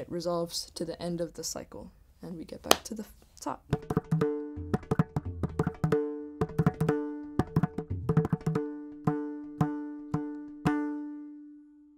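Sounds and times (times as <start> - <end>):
hand drum rhythmic strokes: 3.7 - 10.9
deep bass drum strokes: 3.8 - 6.0.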